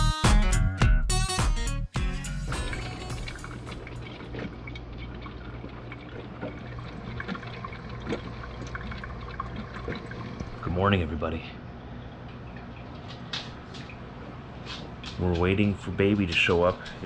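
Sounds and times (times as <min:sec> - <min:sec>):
coffee maker humming: 0:02.5 - 0:15.0
man speaking: 0:15.2 - 0:17.0.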